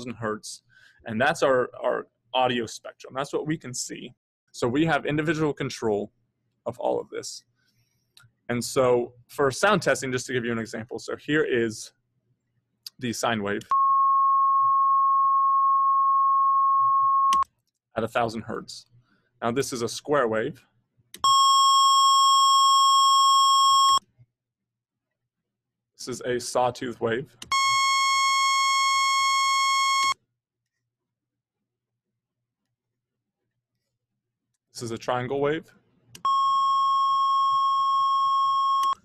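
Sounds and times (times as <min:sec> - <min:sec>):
sine-wave test tone: 0:13.7 - 0:17.4, 0:21.2 - 0:24.0, 0:36.2 - 0:39.0.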